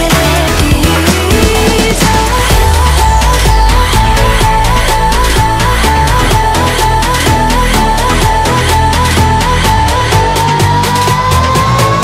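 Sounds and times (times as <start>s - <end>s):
music with fast beat: 0.0s - 12.0s
held high tone: 2.1s - 11.4s.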